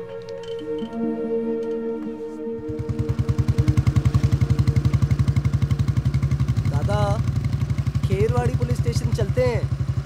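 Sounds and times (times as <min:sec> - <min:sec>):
background music: 0:00.0 - 0:06.4
motorcycle engine running: 0:02.6 - 0:10.0.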